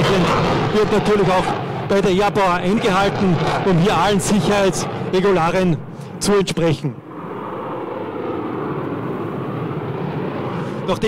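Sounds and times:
fighter jet flying overhead: 0.0 - 11.0.

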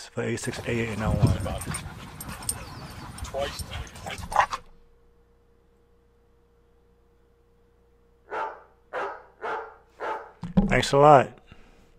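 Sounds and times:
faint steady hum: 1.6 - 11.9
dog barking: 8.3 - 10.4.

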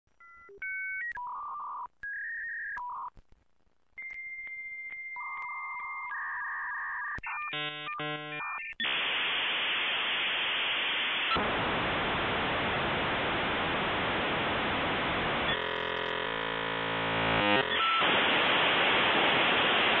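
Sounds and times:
dial-up modem tones: 0.2 - 3.2, 4.0 - 9.3, 15.4 - 16.7, 17.4 - 18.5
hissing static: 7.6 - 20.0.

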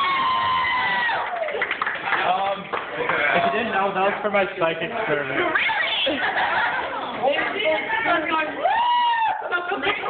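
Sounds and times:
group shouting and cheering: 0.0 - 1.7, 7.8 - 10.0.

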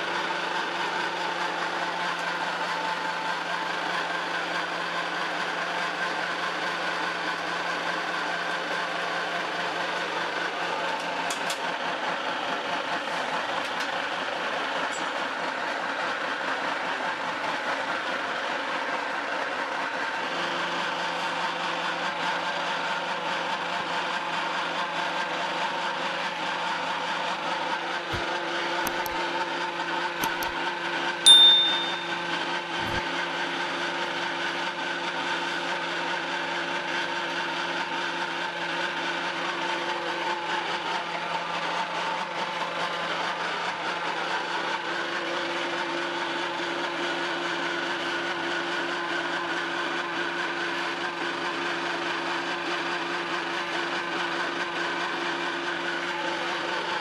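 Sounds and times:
pellet mill humming: 0.0 - 57.0
sharp metallic clink: 31.3 - 33.0.

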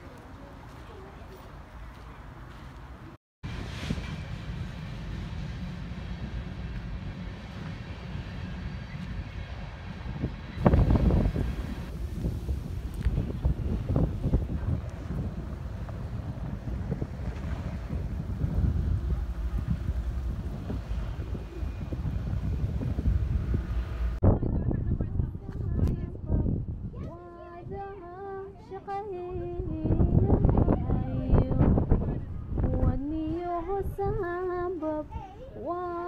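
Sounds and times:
wind buffeting microphone: 1.7 - 35.7.

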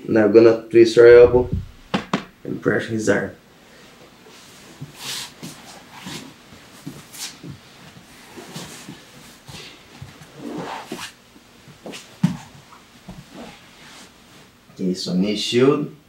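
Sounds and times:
sharp thump on mat: 1.2 - 2.4.

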